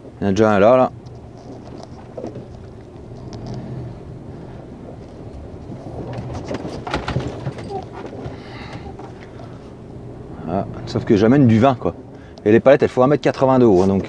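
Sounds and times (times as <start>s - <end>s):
truck diesel engine idling: 0.4s - 6.2s, 7.6s - 14.0s.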